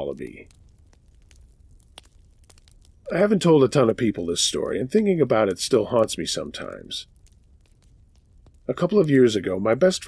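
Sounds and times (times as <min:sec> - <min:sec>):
campfire crackling: 0:00.0 - 0:10.0.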